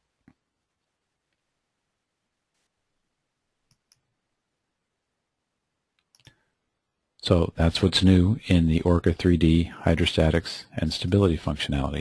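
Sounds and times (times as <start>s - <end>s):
computer mouse clicks: 3.7s - 4.1s, 5.9s - 6.4s.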